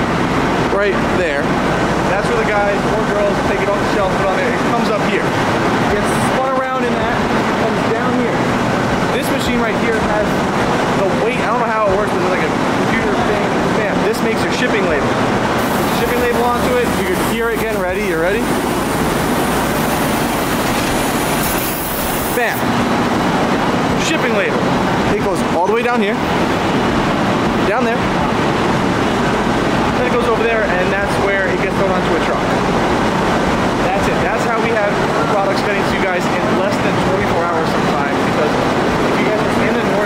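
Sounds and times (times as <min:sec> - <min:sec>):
conveyor machinery running: 0:00.0 - 0:40.0
voices talking: 0:02.1 - 0:22.8.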